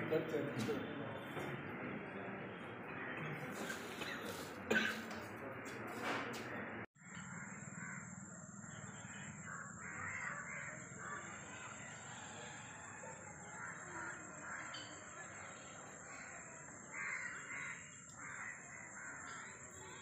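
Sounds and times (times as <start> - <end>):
crows cawing: 7.0 - 15.1, 16.1 - 20.0.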